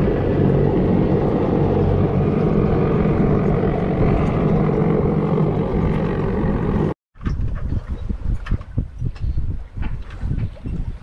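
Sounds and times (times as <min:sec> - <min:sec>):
helicopter rotor rumble: 0:00.0 - 0:07.0.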